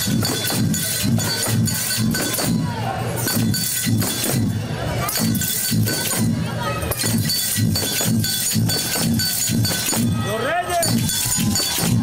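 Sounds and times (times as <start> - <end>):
low percussion beat: 0.0 - 12.0.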